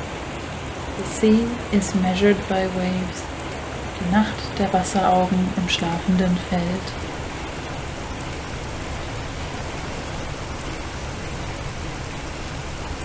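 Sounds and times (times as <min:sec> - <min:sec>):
rain-like water hiss: 0:00.0 - 0:13.0.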